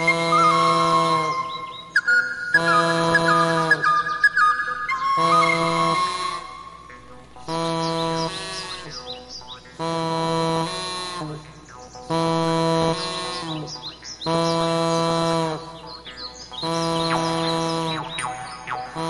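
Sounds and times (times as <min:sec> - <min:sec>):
high chirping whistles: 0:00.0 - 0:06.8
harmonica playing: 0:00.0 - 0:19.0.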